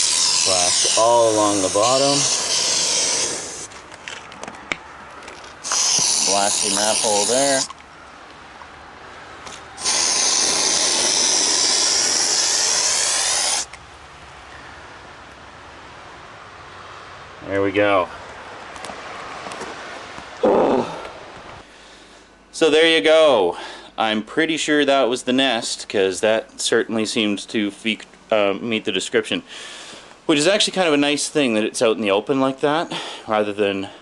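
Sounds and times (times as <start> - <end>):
aerosol can spraying: 0.0 - 3.7, 5.6 - 7.7, 9.8 - 13.7
steady background hiss: 5.5 - 34.0
man grunting: 20.4 - 21.1.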